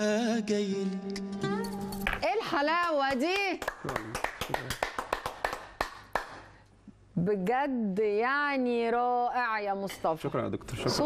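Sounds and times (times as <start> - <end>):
people hand clapping: 2.8 - 6.6.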